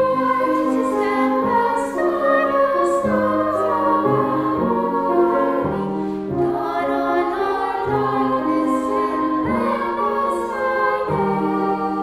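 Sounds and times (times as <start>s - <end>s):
children's choir singing: 0.0s - 12.0s
grand piano accompaniment: 0.0s - 12.0s.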